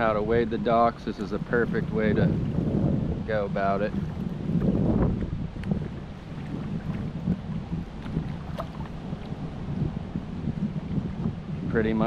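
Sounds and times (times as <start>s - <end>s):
wind rumbling on microphone: 0.0s - 12.0s
water sloshing around legs: 6.0s - 9.6s.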